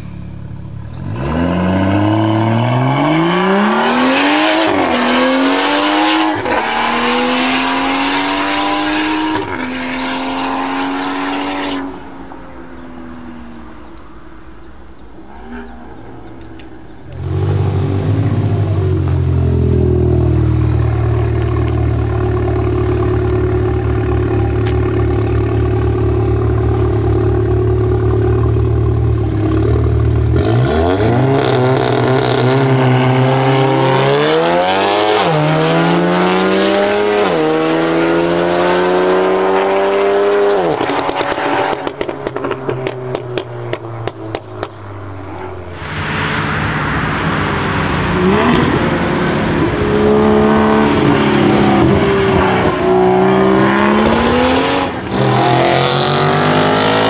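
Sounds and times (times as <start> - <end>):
car engine revving and accelerating: 0.9 - 12.2, 15.2 - 57.0
exhaust crackles: 13.9 - 34.0.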